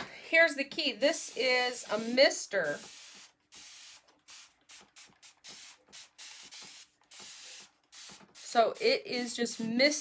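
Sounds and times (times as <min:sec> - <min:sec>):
spray bottle hissing bursts: 0:01.1 - 0:10.0.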